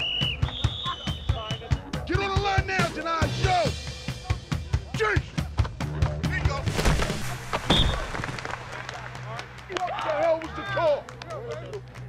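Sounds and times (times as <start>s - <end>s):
sharp thuds: 6.6s - 8.4s
players yelling and cheering: 7.7s - 11.8s.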